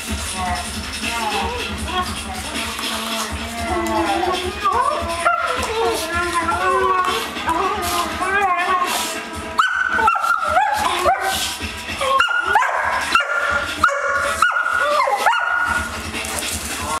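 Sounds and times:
dogs yipping and barking: 0:03.8 - 0:16.6.

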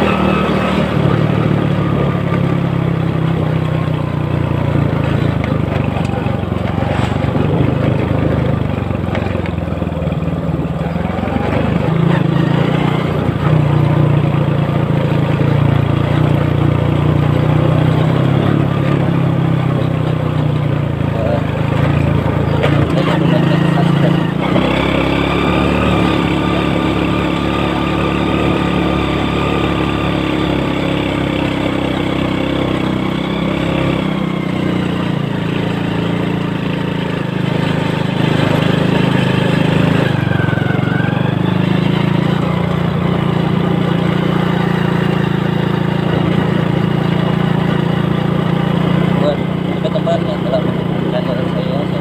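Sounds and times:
motorcycle engine droning: 0:00.0 - 0:52.0.

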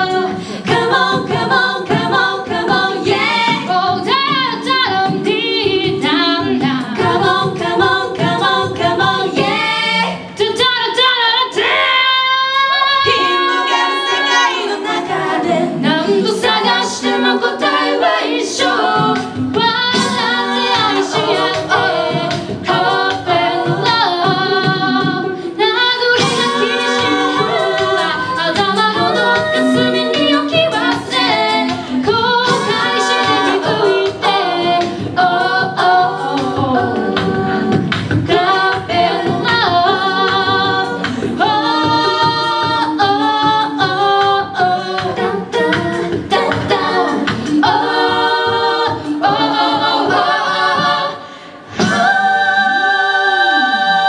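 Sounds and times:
percussive vocal beat: 0:00.0 - 0:54.0
women singing in harmony: 0:00.0 - 0:54.0.

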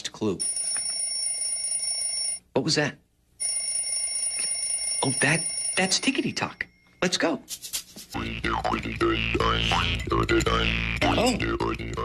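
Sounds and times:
alarm clock ringing: 0:00.4 - 0:02.4, 0:03.4 - 0:07.3.

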